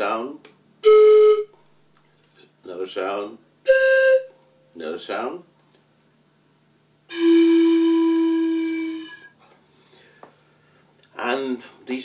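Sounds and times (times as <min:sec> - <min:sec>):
train whistle blown: 0:00.8 - 0:01.5, 0:03.7 - 0:04.4, 0:07.1 - 0:09.4.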